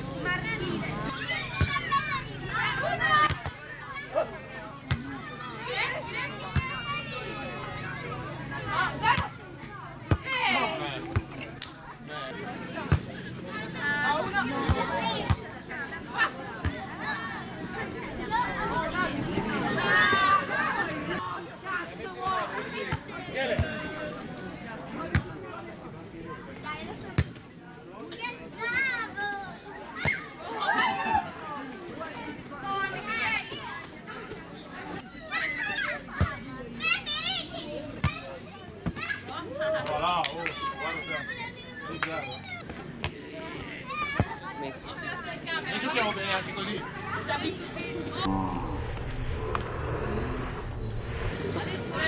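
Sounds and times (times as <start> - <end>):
players shouting calls: 0.0 - 11.4
people talking and calling out: 0.0 - 50.6, 51.2 - 52.0
low drawn-out sound: 48.1 - 52.0.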